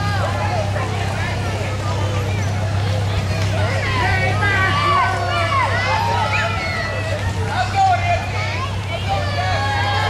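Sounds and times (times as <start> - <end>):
people talking and calling out: 0.0 - 10.0
pickup truck engine hum: 0.0 - 10.0.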